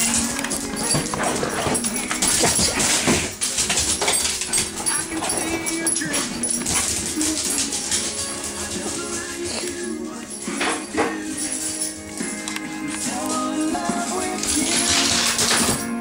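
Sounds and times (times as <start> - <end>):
dog scrambling and scuffling: 0.0 - 9.8, 10.5 - 16.0
song playing in room: 0.0 - 16.0.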